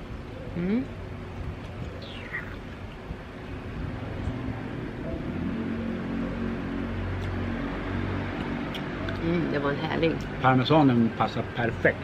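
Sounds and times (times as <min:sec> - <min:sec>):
low engine hum: 0:00.0 - 0:12.0
wind: 0:00.0 - 0:12.0.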